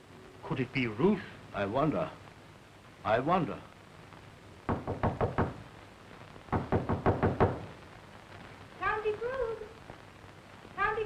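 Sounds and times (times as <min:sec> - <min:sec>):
knocking on a door: 0:04.7 - 0:05.6, 0:06.5 - 0:07.7.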